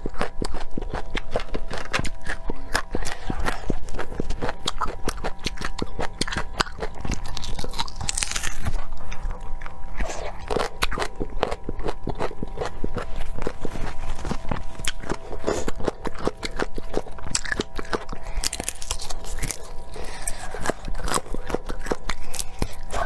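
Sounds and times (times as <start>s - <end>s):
crunchy chewing of raw vegetables: 0.0s - 23.0s.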